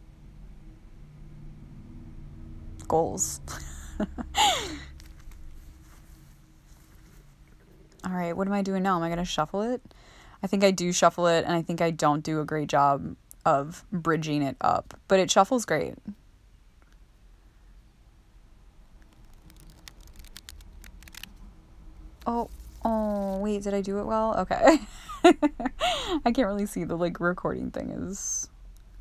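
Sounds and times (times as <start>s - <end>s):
faint low rumble: 0.0s - 29.0s
cards rustling in hands: 4.6s - 7.7s, 19.0s - 21.4s, 22.2s - 23.5s.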